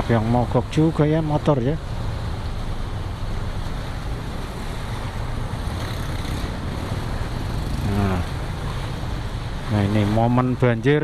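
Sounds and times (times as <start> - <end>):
water sloshing around wheels: 0.0 - 11.0
vehicle engines humming: 1.8 - 10.1.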